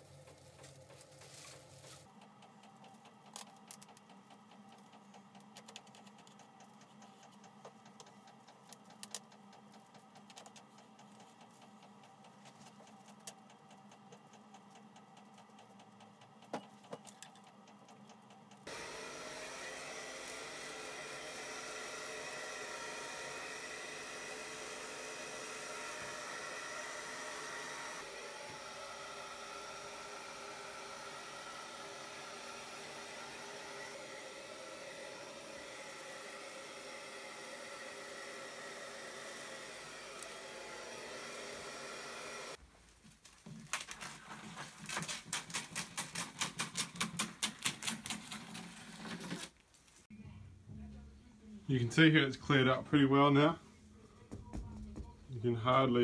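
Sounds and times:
hair dryer blowing: 0:18.6 - 0:42.6.

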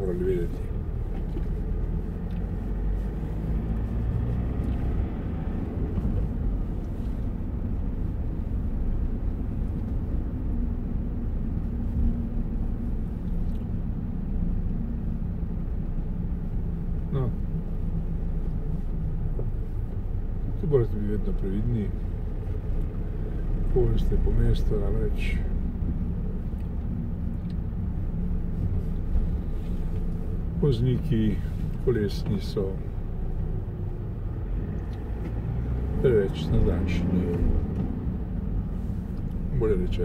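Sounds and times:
car interior engine and tyre rumble: 0:00.0 - 0:40.0.

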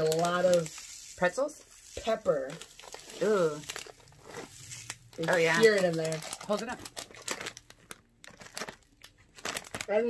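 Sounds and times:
plastic snack bag crinkling: 0:00.0 - 0:10.0.

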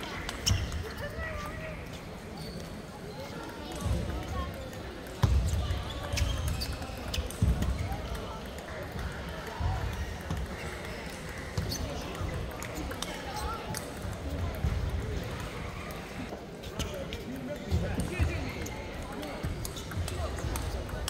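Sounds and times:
murmur of voices: 0:00.0 - 0:21.0.

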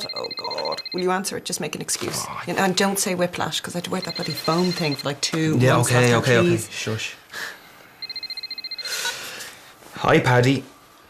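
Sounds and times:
phone ringtone trilling: 0:00.0 - 0:01.2, 0:03.9 - 0:05.2, 0:08.0 - 0:09.3.

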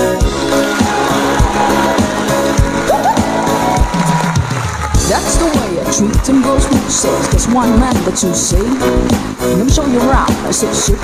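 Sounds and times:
instrumental band music: 0:00.0 - 0:11.0
electronic drum beat: 0:00.1 - 0:11.0.

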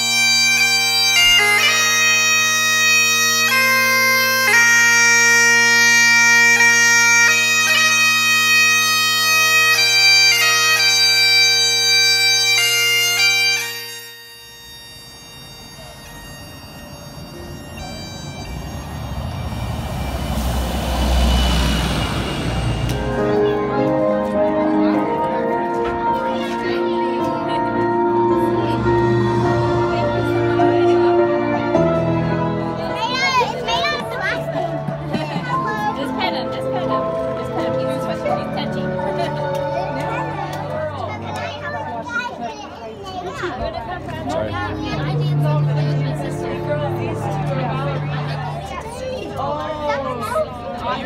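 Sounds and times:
bagpipes playing over drone: 0:00.0 - 0:42.2, 0:43.4 - 0:51.0
outdoor noise: 0:00.0 - 0:51.0
background music: 0:17.6 - 0:41.2.

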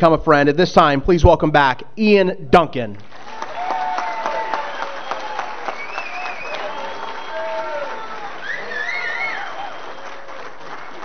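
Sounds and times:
audience applauding: 0:03.0 - 0:11.0.

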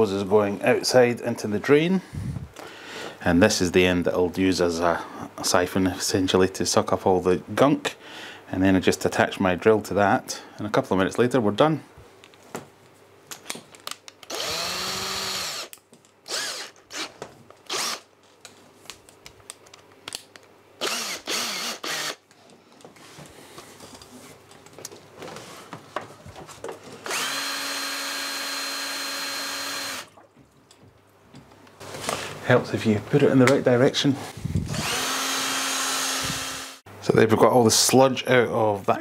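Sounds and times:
electric drill spinning: 0:14.3 - 0:18.1, 0:20.8 - 0:22.2, 0:27.0 - 0:30.1, 0:34.6 - 0:36.8.

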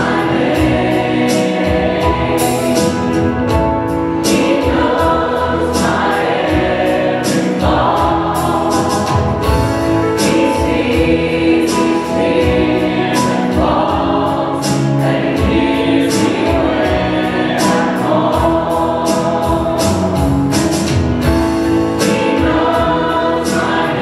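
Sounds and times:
acoustic guitars: 0:00.0 - 0:24.0
choir singing: 0:00.0 - 0:24.0
drum kit beat: 0:00.0 - 0:24.0
piano: 0:00.0 - 0:24.0.

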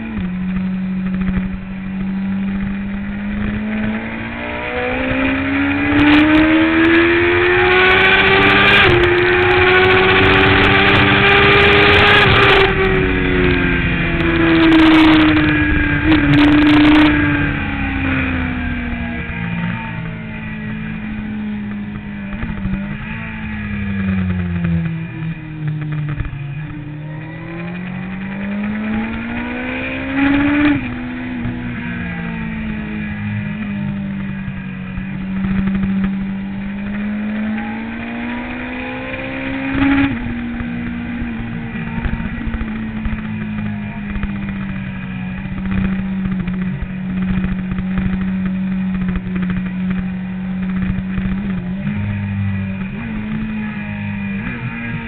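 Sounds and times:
motorcycle engine running: 0:00.0 - 0:55.0.

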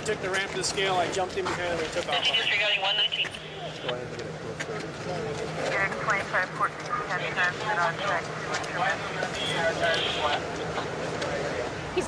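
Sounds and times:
vehicle engines humming: 0:00.0 - 0:12.0
indistinct voices talking: 0:01.5 - 0:12.0.

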